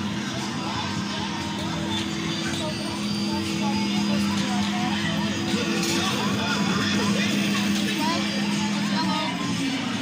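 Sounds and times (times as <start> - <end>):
kiddie ride playing a song: 0.0 - 10.0.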